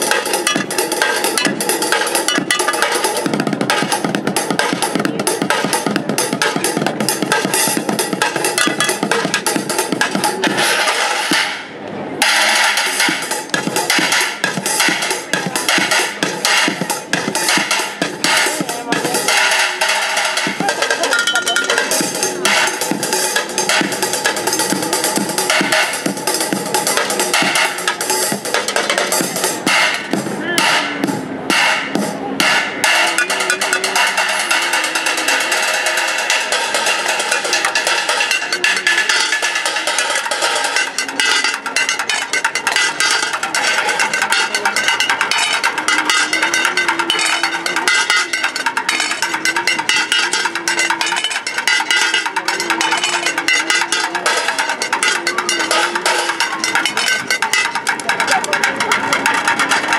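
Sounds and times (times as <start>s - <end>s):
sticks drumming on metal pots: 0.0s - 11.3s, 12.4s - 30.1s, 32.7s - 59.9s.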